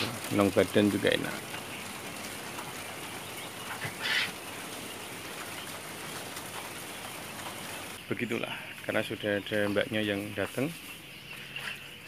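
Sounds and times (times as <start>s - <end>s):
quail call: 3.7s - 4.4s.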